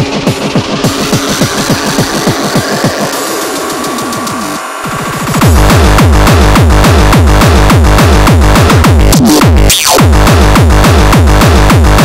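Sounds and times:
electronic dance music: 0.0 - 12.0
heavy bass: 0.0 - 12.0
pitch-dropping kick drums: 0.0 - 12.0
rising synth sweep: 0.1 - 6.5.

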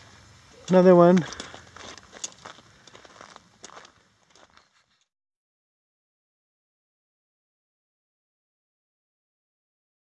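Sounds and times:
footsteps on gravel: 0.7 - 5.1.

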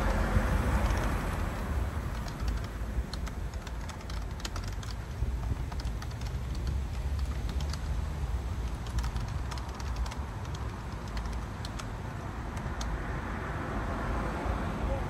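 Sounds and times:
vehicle passing: 0.0 - 15.0
keyboard keys clacking: 2.0 - 8.0, 8.6 - 13.0.

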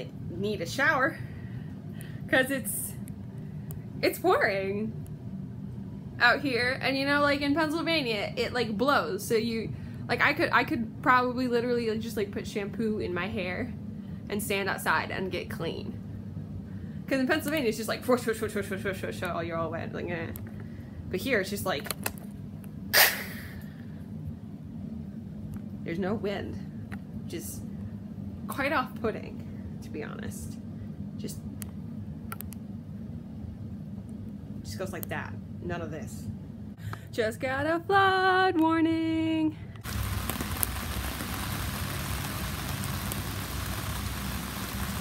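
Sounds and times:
steady low hum: 0.0 - 45.0
heavy rain on ground and plants: 39.8 - 45.0.

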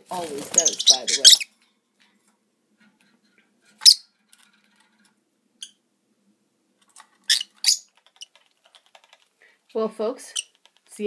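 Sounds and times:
lovebirds chirping shrilly: 0.3 - 1.5, 7.3 - 7.9.

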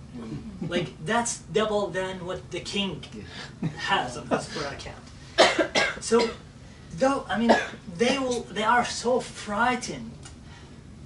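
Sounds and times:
man speaking: 0.1 - 5.0, 6.0 - 10.2
person coughing: 5.4 - 6.4, 7.5 - 8.4.

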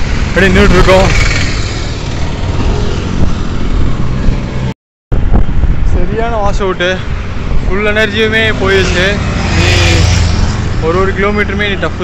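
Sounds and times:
wind rumble on microphone: 0.0 - 11.8
small engine passing by: 0.5 - 4.2.

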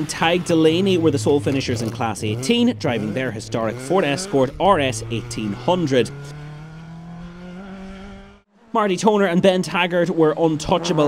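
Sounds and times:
rally car engine accelerating: 0.0 - 11.0.

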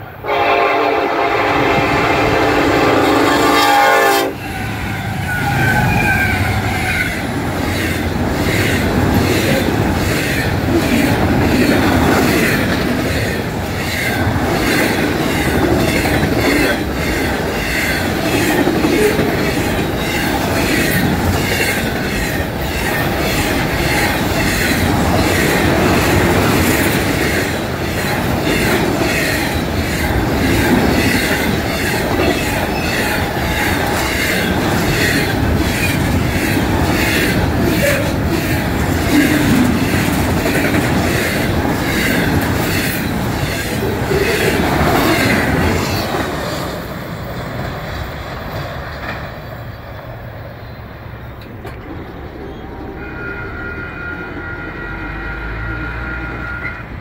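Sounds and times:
high wheel squeal: 4.4 - 10.4
train wheels clattering on rails: 6.2 - 50.3.

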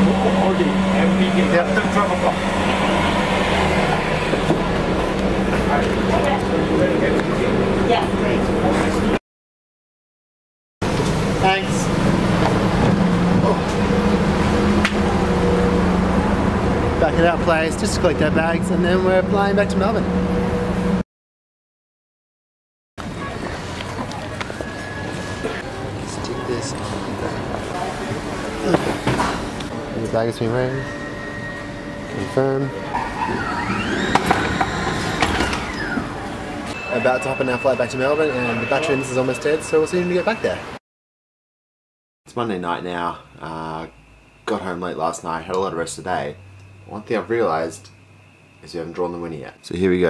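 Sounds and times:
bus engine humming: 0.0 - 9.2, 10.8 - 21.0, 23.0 - 40.8
conveyor belt running: 0.0 - 9.2
motor tone sweeping: 11.2 - 21.0, 29.7 - 40.6.

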